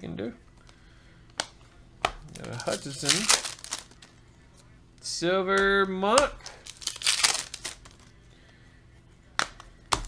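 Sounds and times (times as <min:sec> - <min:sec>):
trading cards snapping: 0:01.3 - 0:04.0, 0:05.6 - 0:08.1, 0:09.4 - 0:10.0.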